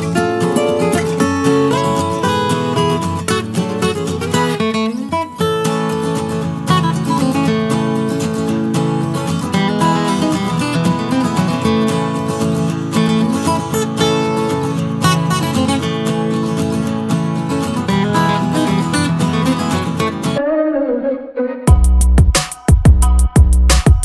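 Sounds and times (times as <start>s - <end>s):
strummed acoustic guitar music: 0.0s - 20.4s.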